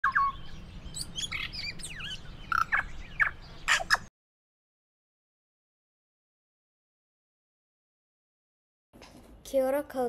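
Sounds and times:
birds chirping: 0:00.0 - 0:04.1.

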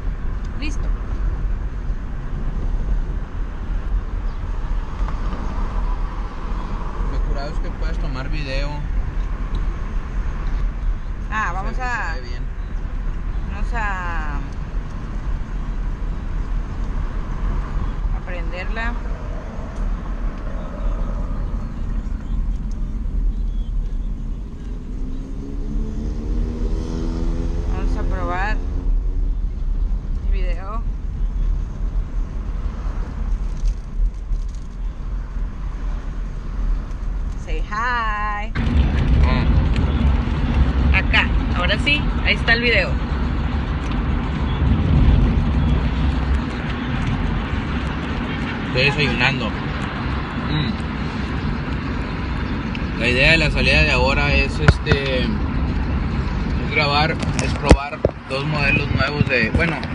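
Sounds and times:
car road and engine rumble: 0:00.0 - 0:59.9
voices: 0:00.5 - 0:01.0, 0:11.3 - 0:12.5, 0:13.4 - 0:14.6, 0:18.1 - 0:22.9, 0:27.6 - 0:28.7, 0:30.2 - 0:30.9, 0:37.4 - 0:40.0, 0:40.8 - 0:43.0, 0:48.3 - 0:49.7, 0:52.8 - 0:55.6, 0:56.5 - 0:59.9.

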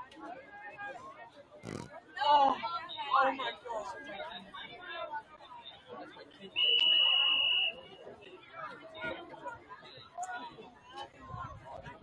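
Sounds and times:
crowd chatter: 0:00.0 - 0:12.0
referee's whistle: 0:06.6 - 0:07.9.

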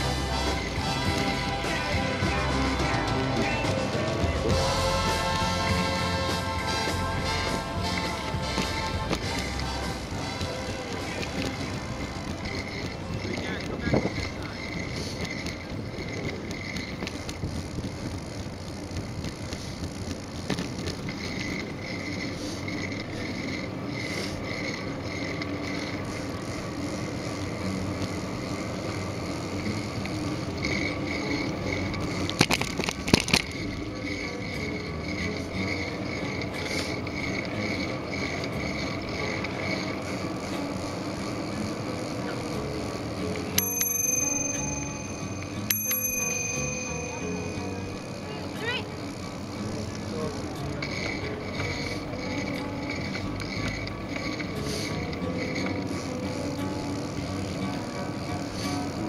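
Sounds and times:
sharp clatters: 0:00.0 - 0:58.9
bicycle bell ringing: 0:00.0 - 0:59.0
bicycle tyre and drivetrain noise: 0:00.0 - 0:59.0
wind: 0:00.0 - 0:59.0.

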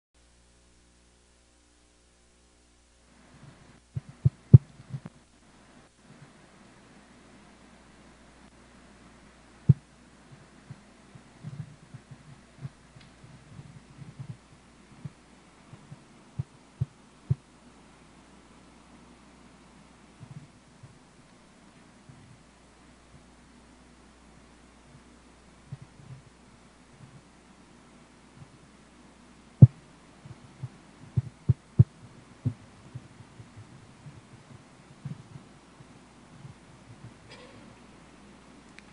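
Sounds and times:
faint steady hiss: 0:00.2 - 0:38.9
faint steady hum: 0:00.2 - 0:38.9
dull low thumps: 0:29.6 - 0:37.3.

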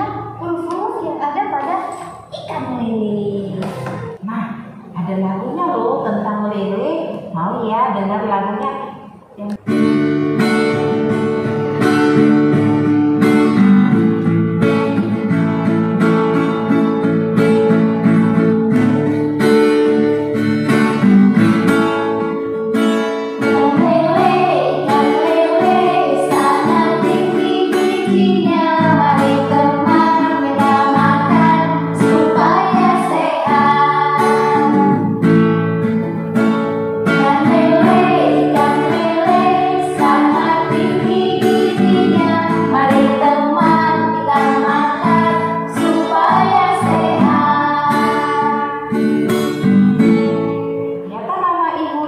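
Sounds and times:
guitar accompaniment: 0:00.0 - 0:07.4, 0:08.0 - 0:52.0
women singing children's song: 0:23.4 - 0:35.2, 0:37.1 - 0:49.1.

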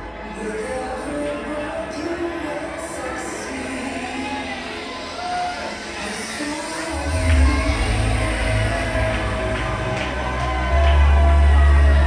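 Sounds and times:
dance music over club sound system: 0:00.1 - 0:12.0.

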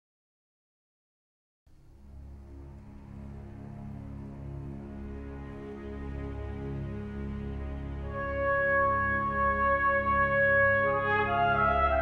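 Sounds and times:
steady low drone: 0:01.7 - 0:12.0
trailer music with held notes: 0:01.7 - 0:12.0.

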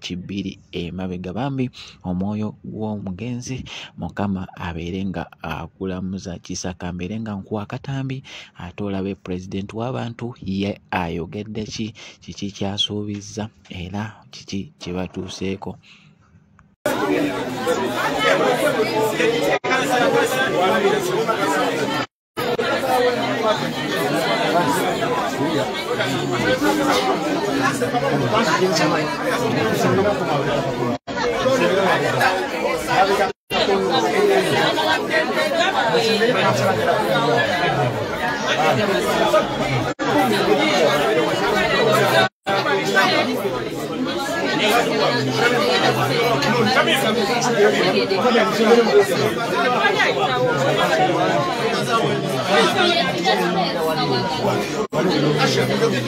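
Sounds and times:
crowd chatter: 0:16.9 - 0:56.0.

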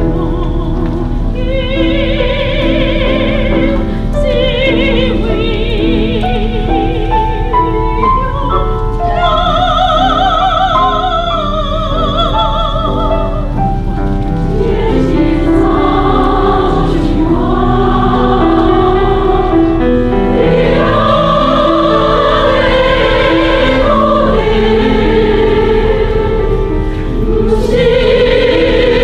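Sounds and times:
mixed choir singing in harmony: 0:00.0 - 0:13.5, 0:14.4 - 0:29.0.

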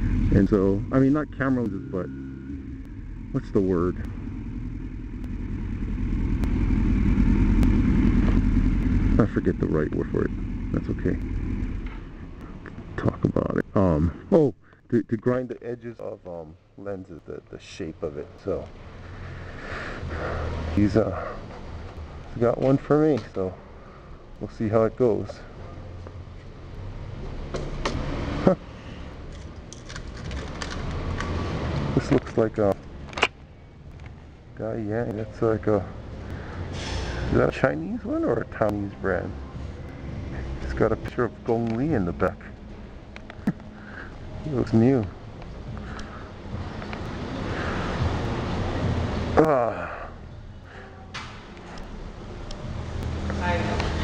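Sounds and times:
vehicle engine running: 0:00.0 - 0:14.3, 0:18.2 - 0:49.6
steady low hum: 0:00.0 - 0:27.0
road rumble: 0:00.0 - 0:54.0
small object clicking and rattling: 0:29.3 - 0:31.3.

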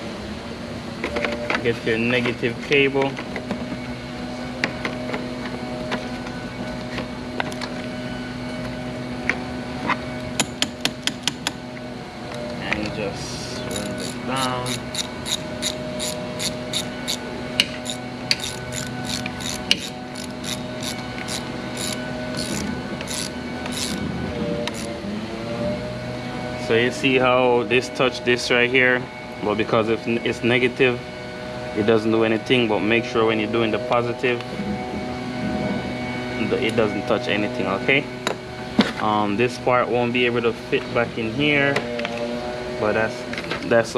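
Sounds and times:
steady hum: 0:00.0 - 0:43.9
ratchet wrench clicking: 0:13.7 - 0:24.0, 0:24.7 - 0:24.9.

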